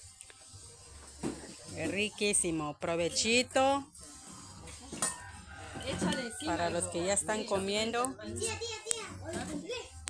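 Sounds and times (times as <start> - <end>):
people talking: 1.5 - 3.8, 5.8 - 9.9.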